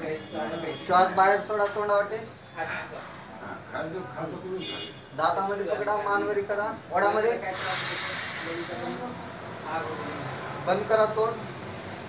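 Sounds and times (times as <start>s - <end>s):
breath drawn through an inhaler: 7.5s - 9.2s.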